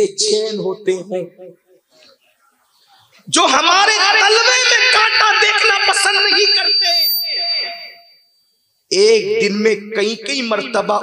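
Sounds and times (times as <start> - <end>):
man speaking over public address: 0.0 - 1.6, 3.2 - 7.9, 8.9 - 11.0
high-pitched whine: 5.2 - 8.3.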